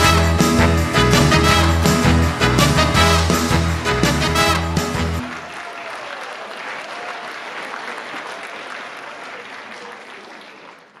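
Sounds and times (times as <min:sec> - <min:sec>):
audience applauding: 0:04.4 - 0:11.0.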